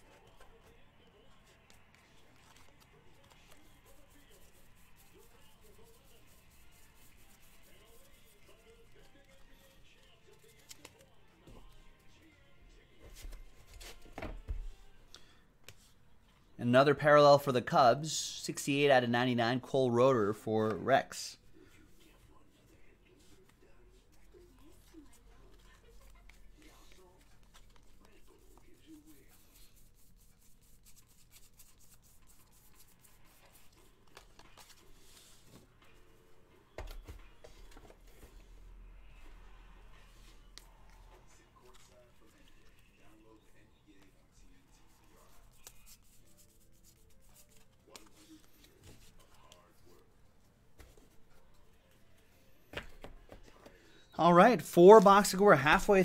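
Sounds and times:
trading cards flipped and stacked: 0:10.3 - 0:11.7, 0:33.3 - 0:35.7, 0:52.7 - 0:53.7.

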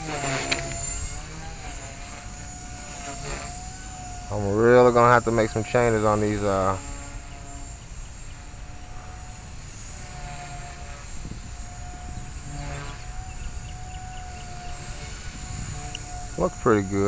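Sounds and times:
rc helicopter whine: 0:00.0 - 0:17.0
wind rumbling on microphone: 0:00.0 - 0:17.0.

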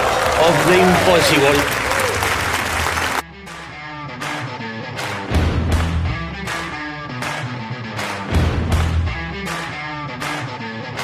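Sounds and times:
studio audience applauding: 0:00.0 - 0:03.2
guitar music: 0:03.2 - 0:11.0.

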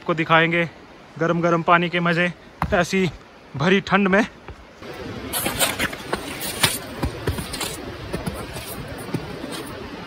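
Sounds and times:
footsteps crunching through snow: 0:05.2 - 0:10.0.

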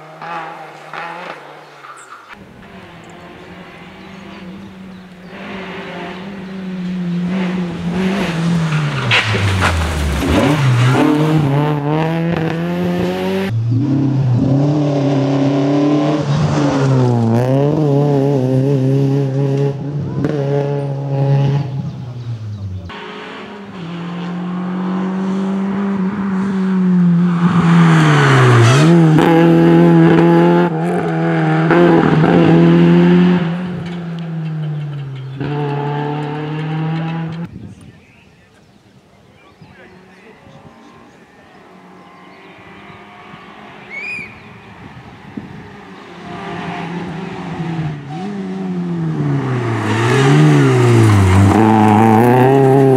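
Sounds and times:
rally car engine revving: 0:00.0 - 0:37.5, 0:39.8 - 0:52.9.

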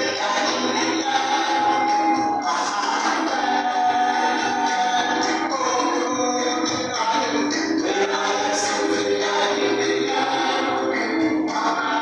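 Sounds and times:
choir singing: 0:00.0 - 0:05.8, 0:06.9 - 0:12.0.

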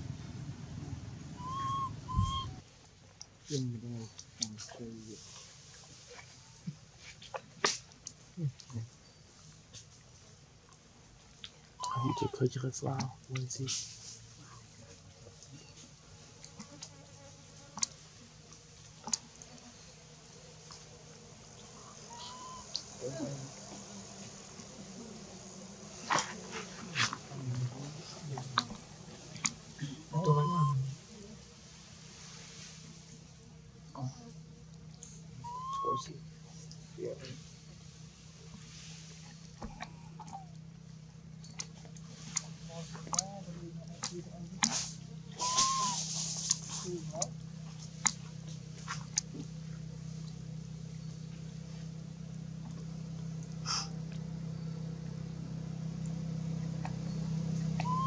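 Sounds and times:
baby monkey squeaking: 0:01.4 - 0:02.6, 0:11.8 - 0:12.4, 0:22.1 - 0:22.8, 0:30.2 - 0:30.8, 0:35.5 - 0:36.1, 0:45.4 - 0:46.0, 0:57.8 - 0:58.0
short whistle-like calls: 0:01.4 - 0:02.6, 0:11.8 - 0:12.4, 0:22.1 - 0:22.8, 0:30.1 - 0:30.9, 0:35.4 - 0:36.2, 0:45.4 - 0:46.2, 0:57.8 - 0:58.0.

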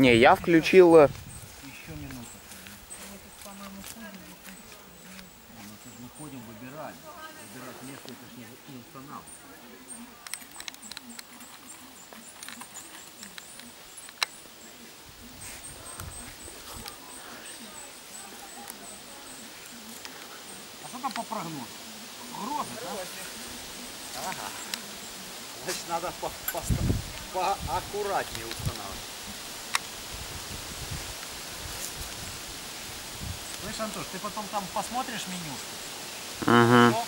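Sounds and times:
outdoor background hiss: 0:00.0 - 0:37.0.

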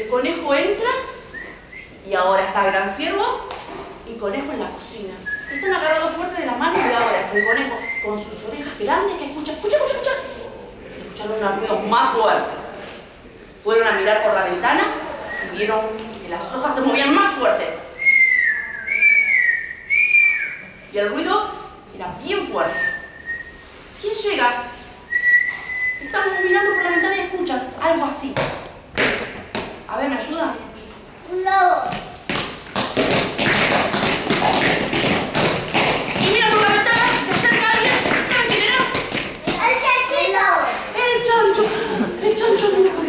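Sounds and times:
person whistling wavering note: 0:18.0 - 0:20.8, 0:25.1 - 0:26.8
children beating on foam mats: 0:28.3 - 0:29.8, 0:31.8 - 0:40.0
children's voices: 0:31.2 - 0:32.1, 0:39.4 - 0:43.0.

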